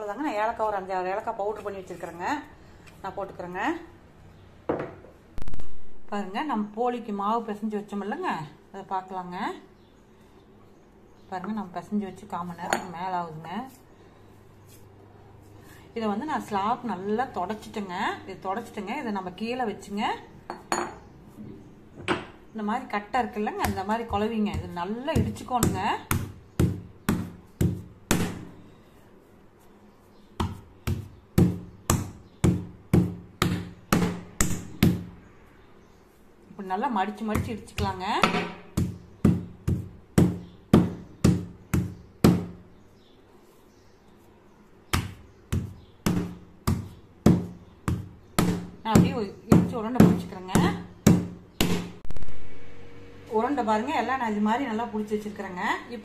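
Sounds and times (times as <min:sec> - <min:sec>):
stone knocking on countertop: 0:04.7 - 0:05.1
loud sudden noise: 0:52.1 - 0:53.3.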